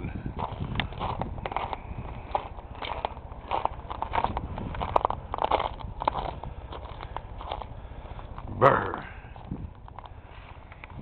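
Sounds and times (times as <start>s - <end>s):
footsteps on frozen snow: 0.0s - 11.0s.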